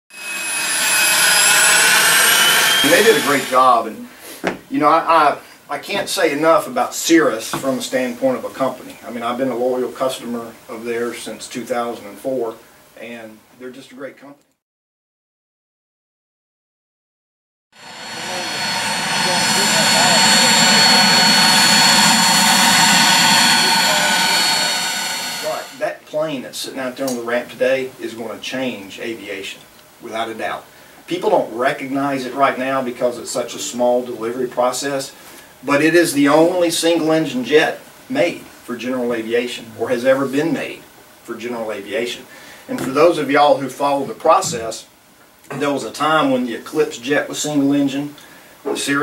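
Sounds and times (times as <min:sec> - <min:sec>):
jet engine turbine whine: 0:00.1 - 0:03.8, 0:17.8 - 0:25.8.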